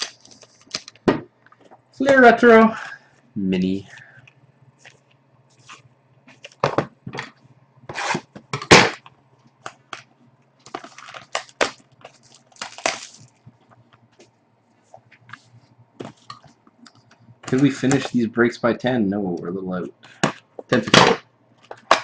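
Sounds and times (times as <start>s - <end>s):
card packs crinkling and rustling: 0.0s - 1.7s, 9.6s - 14.2s, 17.4s - 18.2s
faint low hum: 0.0s - 21.9s.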